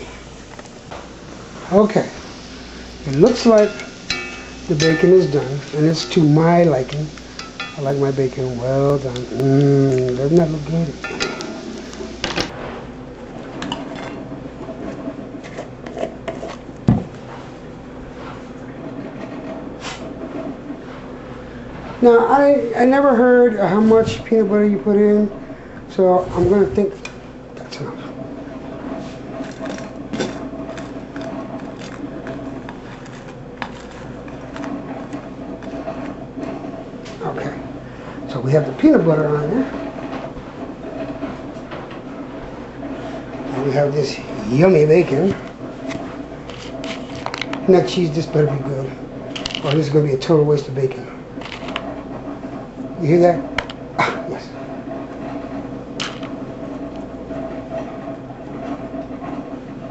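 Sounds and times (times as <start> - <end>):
steady low hum: 0.0 - 59.9
utensils and dishes clinking: 3.0 - 12.5.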